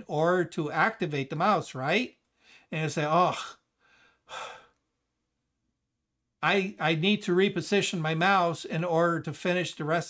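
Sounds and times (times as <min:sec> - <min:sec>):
man breathing out: 0:03.8 - 0:04.8.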